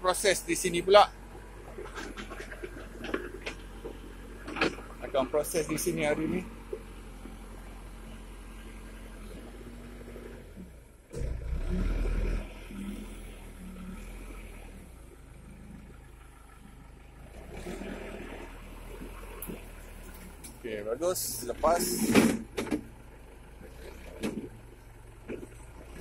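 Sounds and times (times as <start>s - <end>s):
backhoe diesel engine running: 0.0s - 26.0s.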